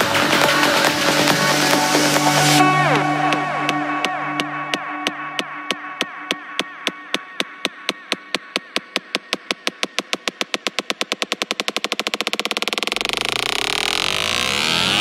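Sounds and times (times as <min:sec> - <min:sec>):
deep bass: 0:00.0 - 0:07.6
synthetic drum hits: 0:00.0 - 0:11.2.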